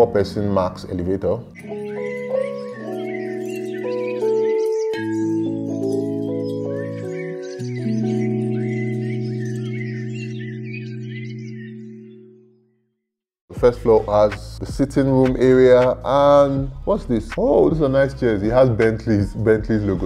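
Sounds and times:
birds chirping: 0.0 - 13.0, 13.8 - 20.0.

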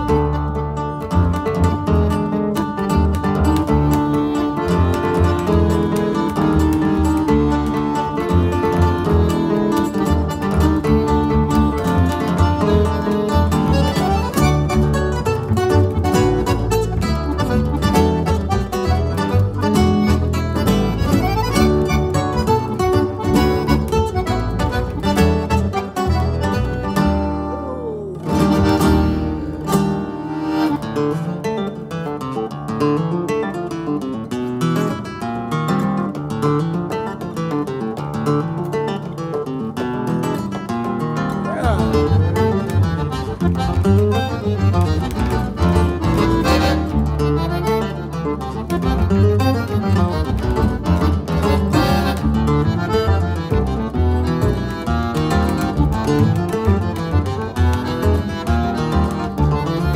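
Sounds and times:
double bass: 0.0 - 31.8, 40.6 - 59.9
accordion: 0.0 - 59.9
nylon-string guitar: 0.0 - 59.9.

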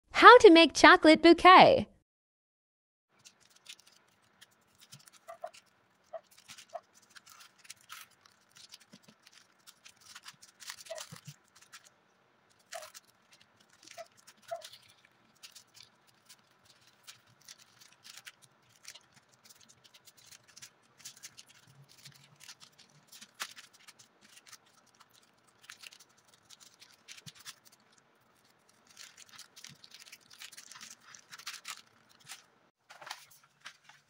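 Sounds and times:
plastic wrappers crinkling: 3.1 - 34.0
skewer squeaking into styrofoam: 3.2 - 11.9, 12.6 - 27.8.

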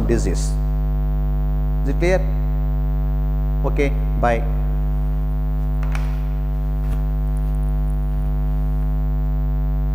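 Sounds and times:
electrical mains hum: 0.0 - 9.9.

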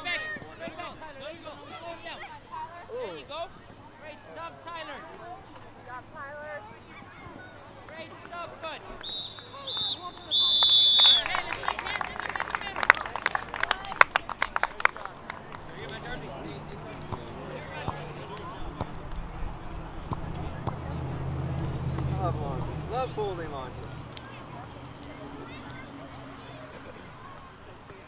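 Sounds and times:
voices of children and adults: 0.0 - 10.4, 11.3 - 28.0
referee's whistle blasts: 9.0 - 11.3
spectators clapping: 9.0 - 19.3.

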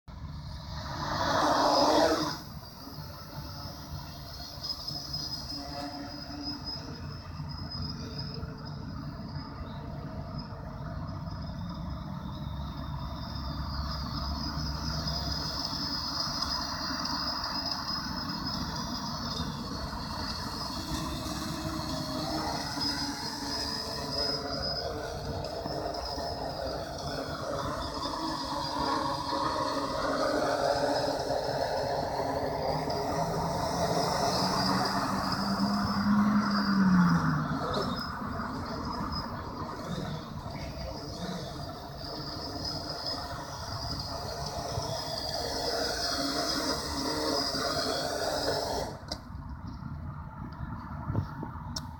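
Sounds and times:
drone propellers buzzing: 0.5 - 7.2, 14.0 - 49.2.

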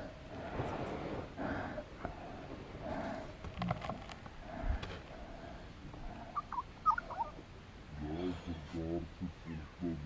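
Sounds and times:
bird chirps: 6.3 - 7.4
man's low wordless voice: 7.9 - 10.0.

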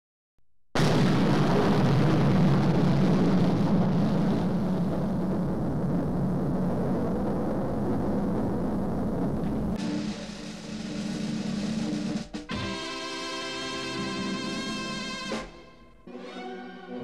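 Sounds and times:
low hum: 2.3 - 9.8.

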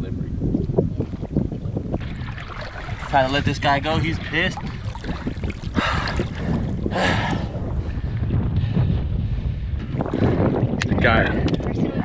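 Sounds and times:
wind rumble on microphone: 0.0 - 12.0
shark splashing in shallow water: 0.7 - 7.0.

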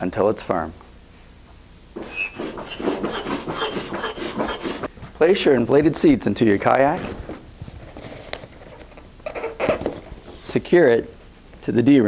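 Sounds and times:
foot pump air whooshes: 2.0 - 5.0.

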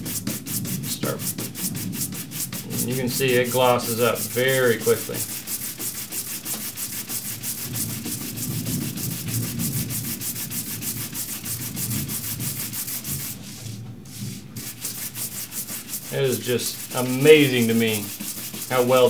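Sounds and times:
brush scrubbing leather: 0.0 - 19.0.

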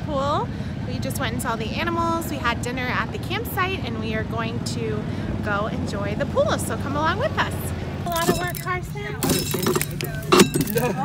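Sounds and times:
voices talking: 0.0 - 11.0
corn sheller crunching and rattling: 8.1 - 11.0.

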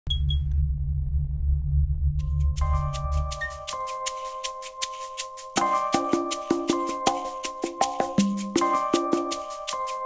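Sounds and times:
deep rumbling synth drone: 0.1 - 3.6.

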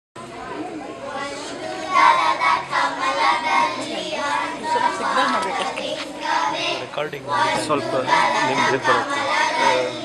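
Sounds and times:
children's voices and chatter: 0.2 - 10.0.

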